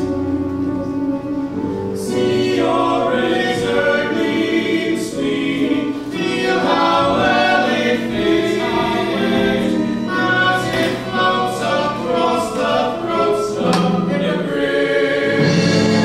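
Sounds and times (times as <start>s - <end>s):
voices singing in harmony: 0.0s - 16.0s.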